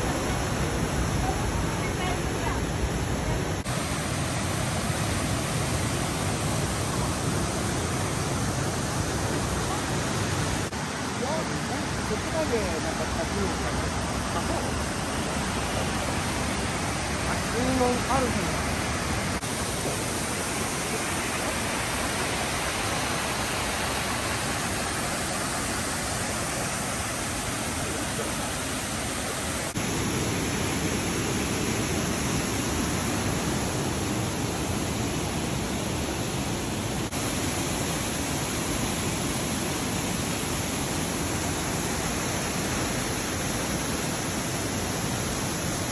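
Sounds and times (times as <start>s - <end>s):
waterfall rushing over rock: 0.0s - 45.9s.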